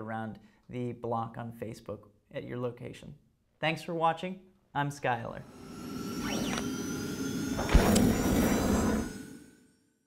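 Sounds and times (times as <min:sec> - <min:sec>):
rising whoosh noise: 0:05.4 - 0:09.6
sharp hit: 0:05.5 - 0:09.7.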